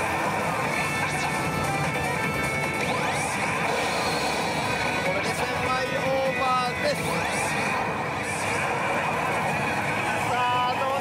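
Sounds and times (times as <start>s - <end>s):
din of gaming machines: 0.0s - 11.0s
slot machine sound effects: 0.0s - 11.0s.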